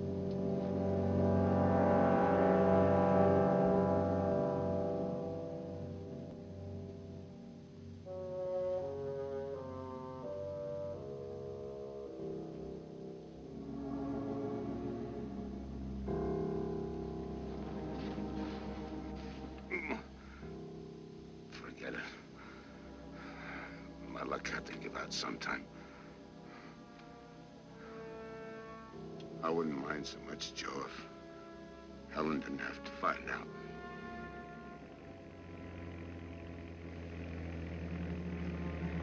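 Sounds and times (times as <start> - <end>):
dramatic orchestral film music: 0.0 - 39.0.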